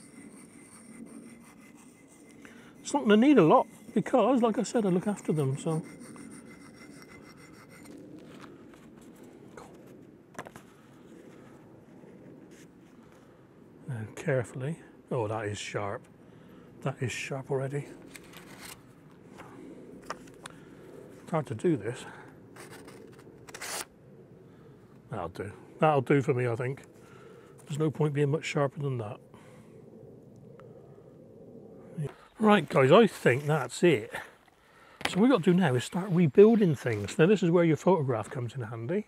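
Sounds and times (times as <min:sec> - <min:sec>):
cloth rubbing on knife blade: 0:00.0 - 0:08.0.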